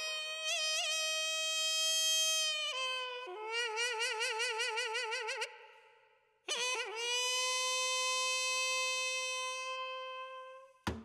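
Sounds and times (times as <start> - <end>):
reedy wind instrument long note: 0.0 - 5.5, 6.5 - 10.8.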